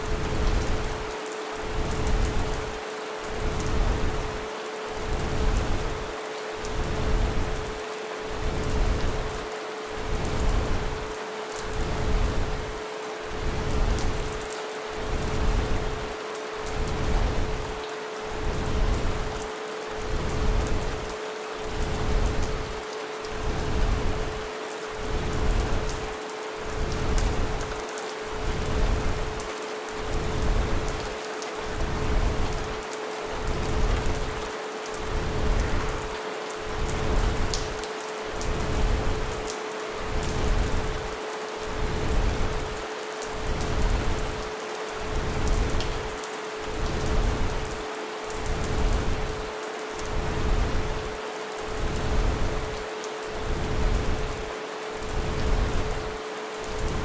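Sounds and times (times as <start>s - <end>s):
rain: 0.0s - 57.0s.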